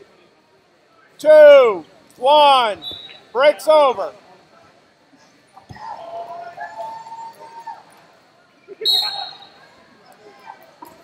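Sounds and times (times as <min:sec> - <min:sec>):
referee's whistle blowing: 0:02.7 - 0:03.3, 0:08.8 - 0:09.6.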